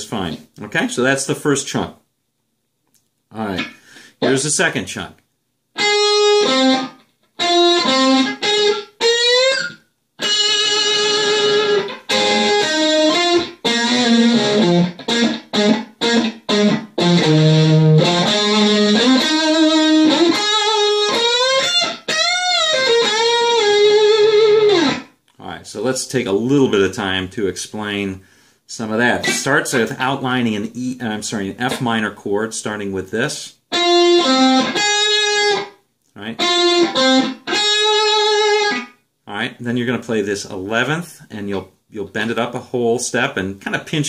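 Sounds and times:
electric guitar lead solo: 5.8 - 25.1, 33.7 - 35.7, 36.4 - 38.9.

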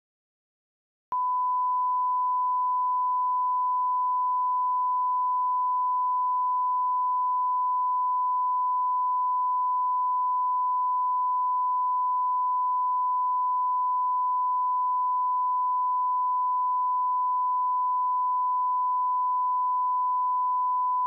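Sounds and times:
high-pitched sine test tone: 1.1 - 21.0.

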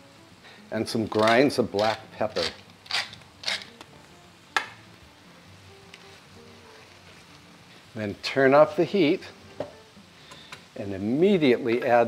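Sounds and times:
faint background music: 0.0 - 12.0
sauce simmering and sizzling: 0.0 - 12.0.

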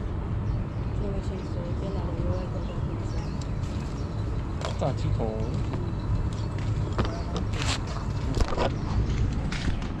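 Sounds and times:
low outdoor rumble: 0.0 - 10.0
camera handling rustles and knocks: 6.4 - 10.0.

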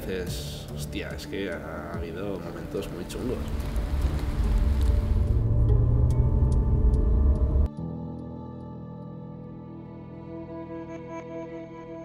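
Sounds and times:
soft music: 0.0 - 12.0
vehicle rumbling on wet road: 3.0 - 7.7.

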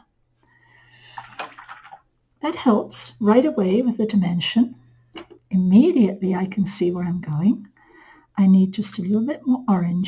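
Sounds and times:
water splashing and clicking: 1.0 - 2.2.

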